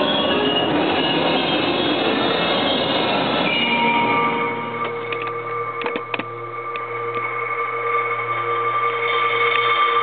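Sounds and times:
percussion ensemble sustained tones: 0:00.0 - 0:10.0.

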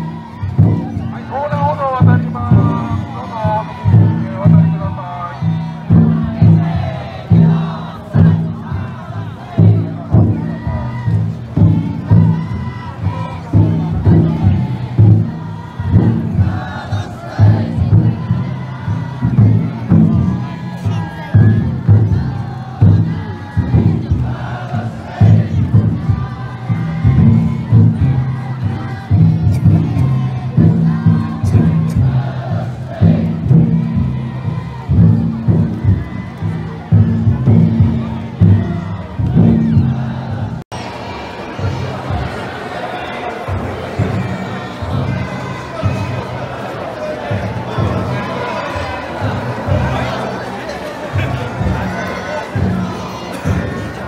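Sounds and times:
taiko drum beating: 0:00.0 - 0:40.6, 0:43.5 - 0:54.0
people shouting and chanting: 0:00.0 - 0:54.0.

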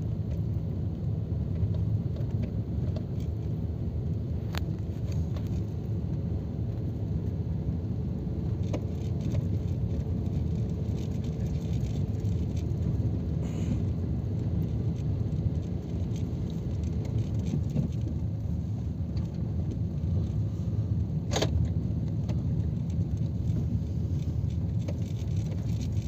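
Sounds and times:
vehicle engine and road rumble: 0:00.0 - 0:26.0.

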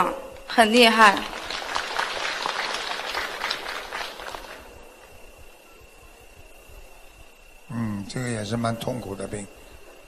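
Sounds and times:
audience applause: 0:01.0 - 0:05.0.

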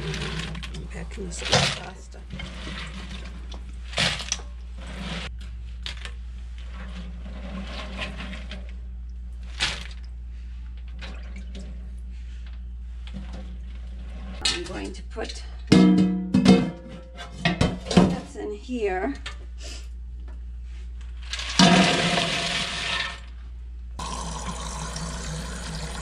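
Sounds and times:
water running: 0:00.0 - 0:05.0, 0:24.0 - 0:26.0.

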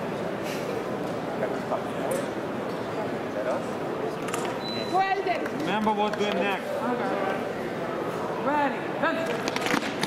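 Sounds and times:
busy hall background noise: 0:00.0 - 0:10.0.

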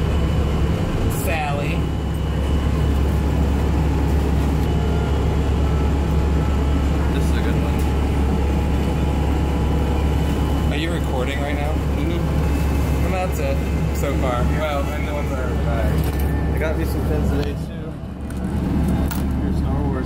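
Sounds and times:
vehicle cabin drone: 0:00.0 - 0:20.0.

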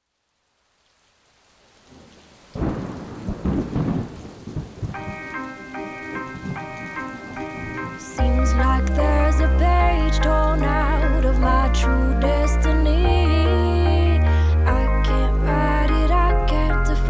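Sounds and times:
rain hiss: 0:00.0 - 0:16.2
rolling thunder rumbles: 0:01.9 - 0:08.6
sustained melodic notes: 0:05.0 - 0:17.0.

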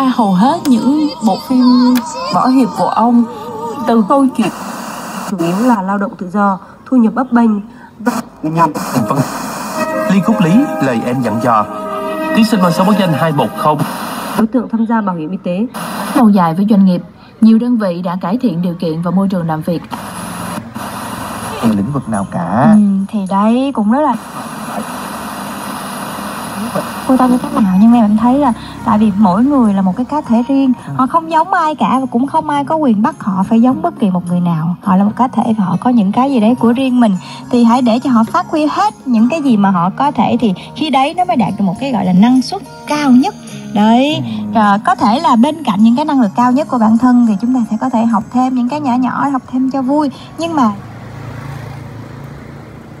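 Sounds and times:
radio static hiss: 0:04.2 - 0:05.8, 0:08.1 - 0:11.4, 0:12.6 - 0:14.4, 0:15.8 - 0:16.3, 0:19.9 - 0:22.0, 0:24.2 - 0:28.0
voice on radio: 0:08.0 - 0:11.8, 0:21.4 - 0:22.8, 0:24.2 - 0:25.2, 0:26.4 - 0:27.7.

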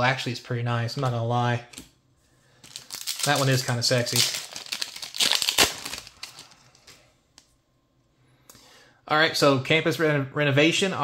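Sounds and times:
foil wrapper tearing and crinkling: 0:02.6 - 0:07.0.

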